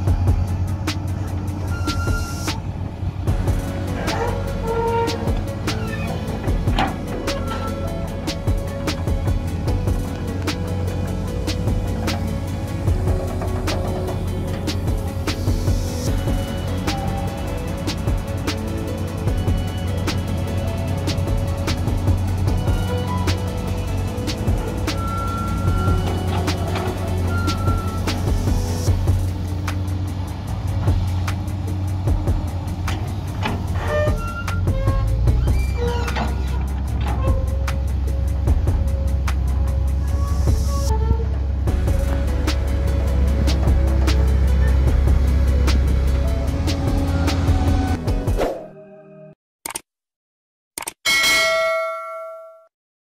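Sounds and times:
background music: 0:00.0 - 0:40.9, 0:41.5 - 0:49.4
excavator diesel engine running: 0:00.0 - 0:48.1
bright notification bell ding: 0:51.1 - 0:52.7.

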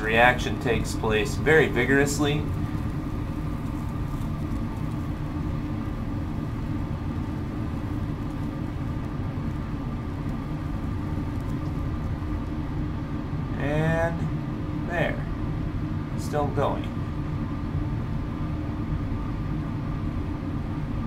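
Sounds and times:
low mechanical hum and rumble: 0:00.0 - 0:21.0.

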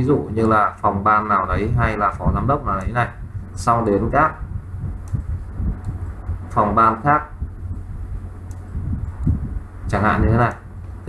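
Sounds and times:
soft low sounds: 0:00.0 - 0:11.0
steady low hum: 0:00.0 - 0:11.0.

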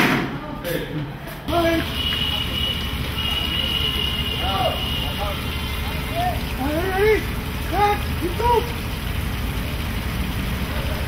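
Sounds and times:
low outdoor rumble: 0:01.8 - 0:11.0.

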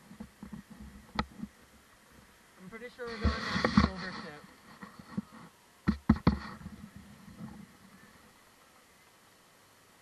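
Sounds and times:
faint steady hiss: 0:00.0 - 0:10.0
sharp knocks: 0:05.8 - 0:06.6.

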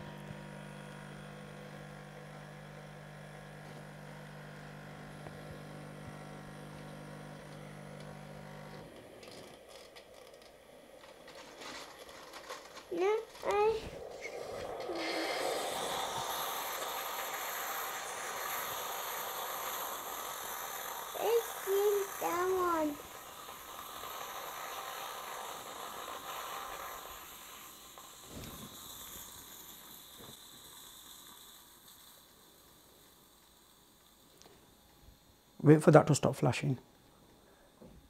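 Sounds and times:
coffee machine dispensing frothed milk: 0:00.0 - 0:34.5.

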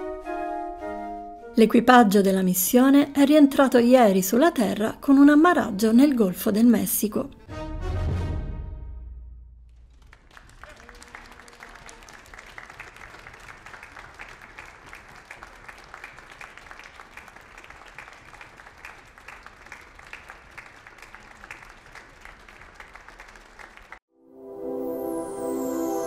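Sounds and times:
group applause: 0:09.7 - 0:24.0.

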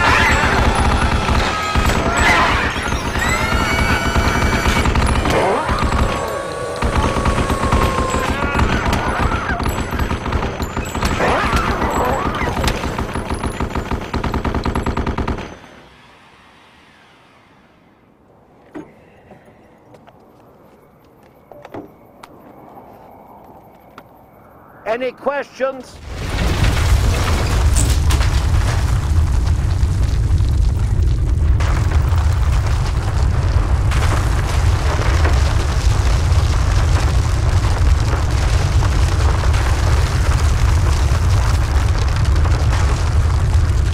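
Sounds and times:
shrill creature shrieks: 0:00.0 - 0:09.6
cannon firing rapid bursts: 0:00.0 - 0:15.6.

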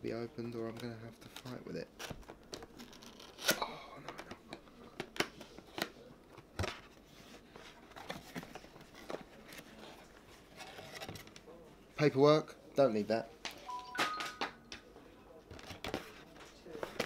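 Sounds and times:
cardboard rustling: 0:06.6 - 0:11.4.

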